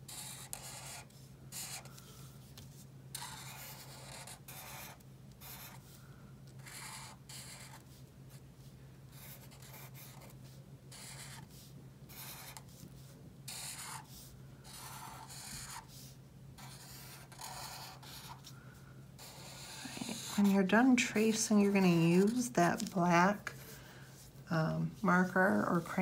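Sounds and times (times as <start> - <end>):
marker scratching on paper: 0.1 - 2.0, 2.6 - 6.0, 6.6 - 8.4, 9.1 - 18.5, 19.2 - 21.0.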